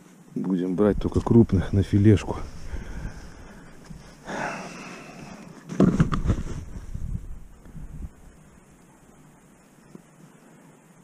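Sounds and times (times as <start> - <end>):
breathy exhale: 2.5 - 5.6.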